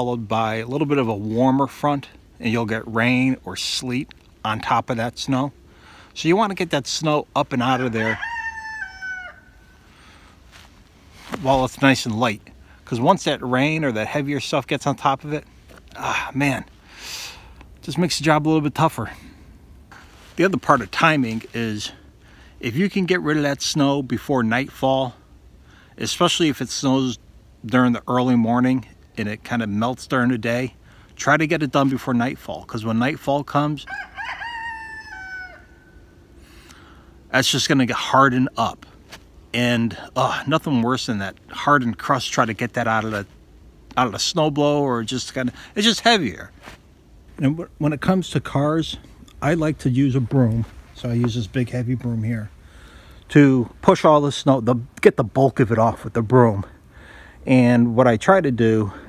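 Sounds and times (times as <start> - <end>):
quiet outdoor background: 0.0 - 59.0
rooster crowing: 7.7 - 9.9, 33.8 - 36.2.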